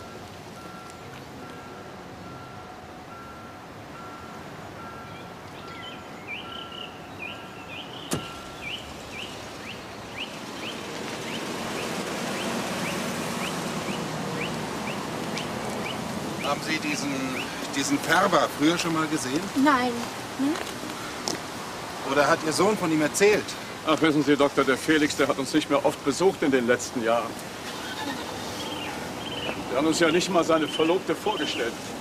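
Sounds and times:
birds chirping: 0:03.9 - 0:23.9, 0:27.2 - 0:31.8
car door shutting: 0:08.0 - 0:08.5.

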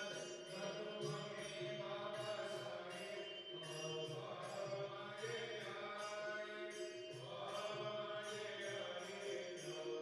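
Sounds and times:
mantra chanted in held notes: 0:00.0 - 0:10.0.

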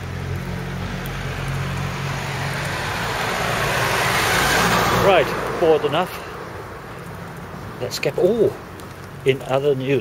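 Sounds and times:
car approaching on road: 0:00.0 - 0:09.6.

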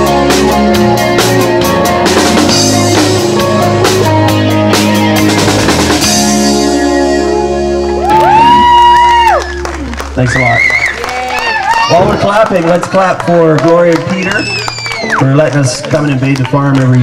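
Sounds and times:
live rock band playing: 0:00.0 - 0:10.2.

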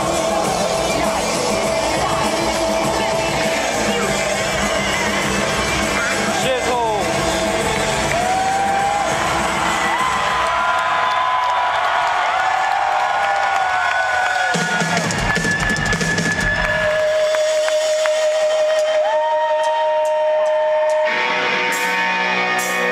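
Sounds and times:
live rock music: 0:00.0 - 0:10.5, 0:14.5 - 0:22.9
crowd noise: 0:00.0 - 0:22.9.

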